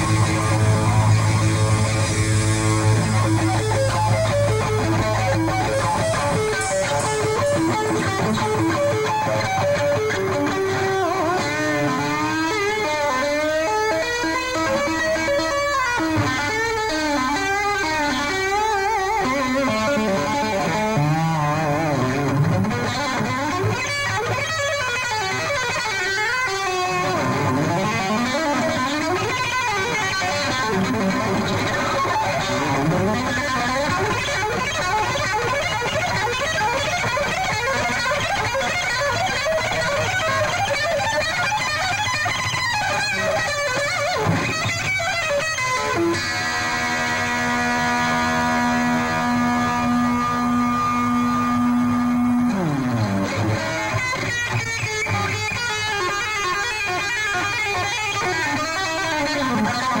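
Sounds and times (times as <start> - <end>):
distorted electric guitar solo: 0.0 - 60.0.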